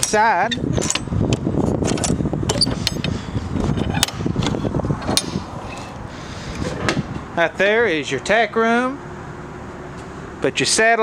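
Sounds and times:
metal latch clicks and rattles: 0:00.0 - 0:06.0
steady background noise: 0:00.0 - 0:11.0.

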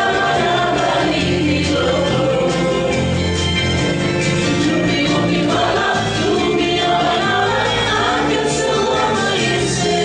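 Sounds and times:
ensemble singing in chorus: 0:00.0 - 0:10.0
full instrumental backing: 0:00.0 - 0:10.0.

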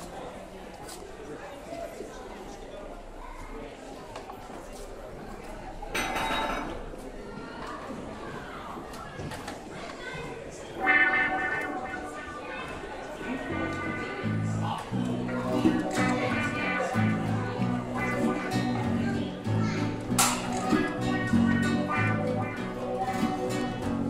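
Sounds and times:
low room murmur: 0:00.0 - 0:24.0
low bass notes: 0:10.8 - 0:12.4, 0:13.3 - 0:24.0
electric guitar and keyboard: 0:10.8 - 0:24.0.

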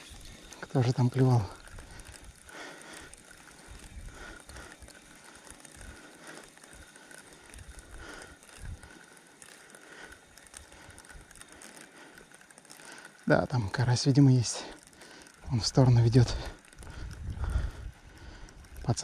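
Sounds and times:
fishing reel whirring: 0:00.0 - 0:19.0
reel gears clicking: 0:00.0 - 0:19.0.

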